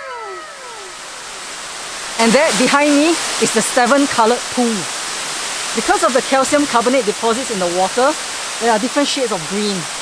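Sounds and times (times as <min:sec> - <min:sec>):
pitched tone gliding down: 0:00.0 - 0:01.2
waterfall rushing over stone: 0:00.0 - 0:10.0.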